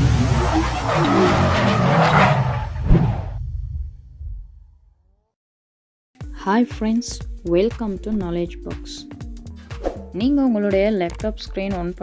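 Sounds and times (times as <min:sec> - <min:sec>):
car tyres skidding: 0:00.0 - 0:03.4.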